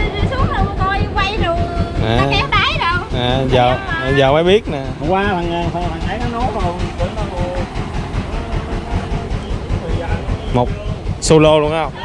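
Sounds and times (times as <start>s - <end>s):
small engine chugging: 0.0s - 12.0s
person speaking: 2.0s - 4.1s.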